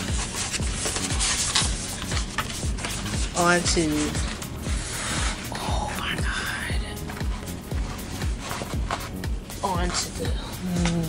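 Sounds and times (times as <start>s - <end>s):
paper rustling: 0.0s - 5.7s, 6.9s - 9.2s
background music with steady beat: 0.0s - 11.0s.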